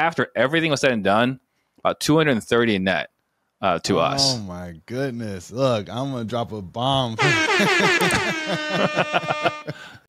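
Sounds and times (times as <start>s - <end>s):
man laughing loudly: 7.2s - 9.9s.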